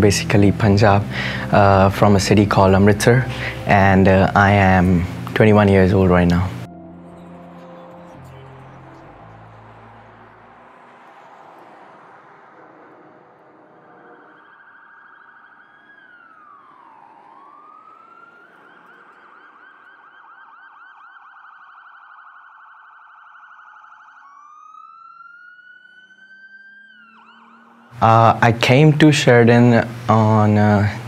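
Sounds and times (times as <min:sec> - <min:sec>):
street noise: 0:00.0 - 0:20.9, 0:26.2 - 0:31.0
emergency vehicle siren: 0:00.2 - 0:28.9.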